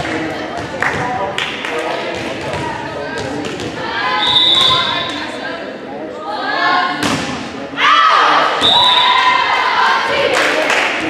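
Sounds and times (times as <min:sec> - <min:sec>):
spectators shouting and cheering: 0:07.7 - 0:11.0.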